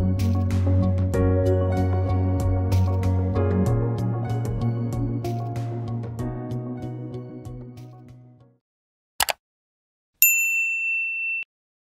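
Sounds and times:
quick double click: 9.2s - 9.4s
bright bell ding: 10.2s - 11.5s.

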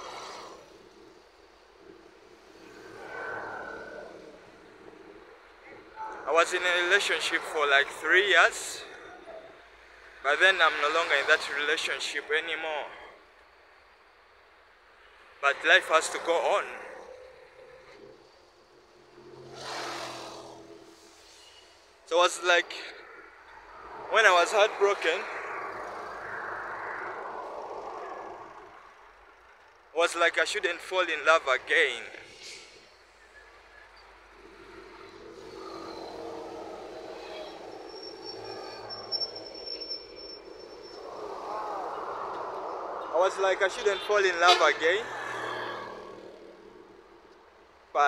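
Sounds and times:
low traffic hum: 0.0s - 48.0s
vehicle driving past: 17.1s - 21.9s, 34.2s - 43.8s
vehicle engine passing by: 19.0s - 21.2s.

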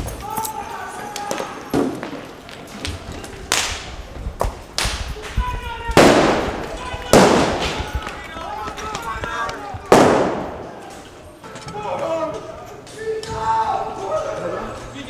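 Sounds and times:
voices calling out: 5.1s - 15.0s
loud explosive bangs: 5.8s - 8.3s, 9.9s - 10.8s.

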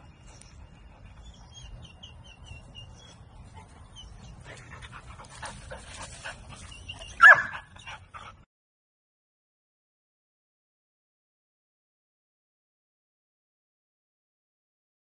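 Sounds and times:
dog whimpering and yipping: 6.5s - 8.0s
dog barking: 7.2s - 7.7s.

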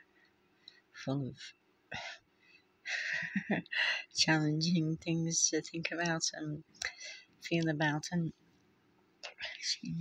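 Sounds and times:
woman breathing: 1.9s - 4.2s, 6.8s - 7.4s.

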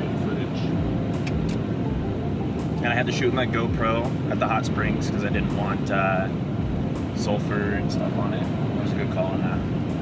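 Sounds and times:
car cabin road and engine noise: 0.0s - 10.0s.

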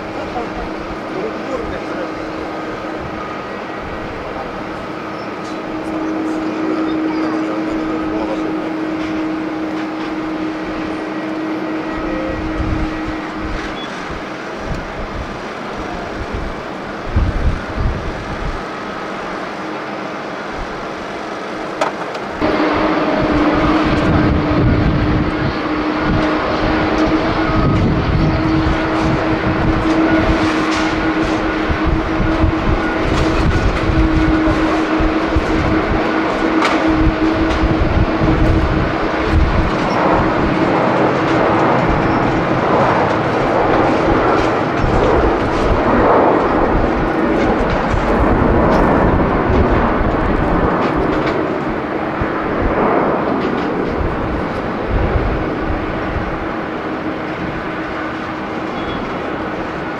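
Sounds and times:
jet airliner engines droning: 0.0s - 59.9s.

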